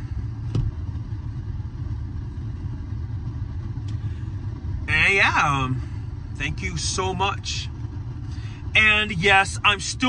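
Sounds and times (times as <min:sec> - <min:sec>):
car idling from inside cabin: 0:00.0 - 0:10.0.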